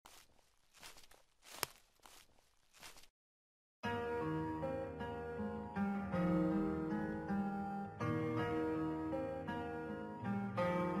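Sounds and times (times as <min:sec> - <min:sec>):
faint footsteps: 0:00.0 - 0:03.1.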